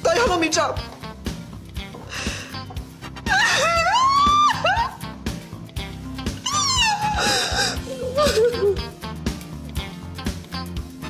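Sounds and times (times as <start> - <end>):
background music: 0.0 - 11.0
woman wailing: 3.3 - 5.0, 6.4 - 8.8.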